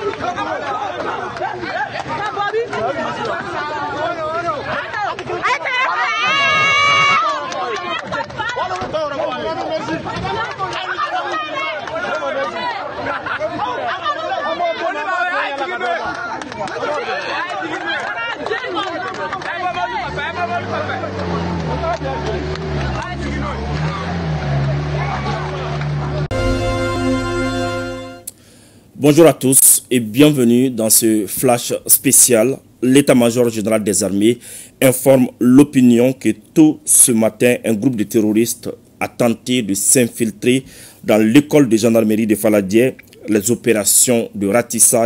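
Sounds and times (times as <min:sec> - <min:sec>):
crowd voices talking: 0:00.0 - 0:28.3
truck engine droning: 0:20.0 - 0:28.1.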